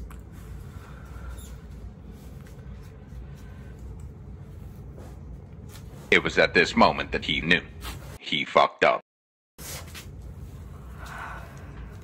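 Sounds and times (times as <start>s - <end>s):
low hum: 0.0s - 8.2s, 9.9s - 12.0s.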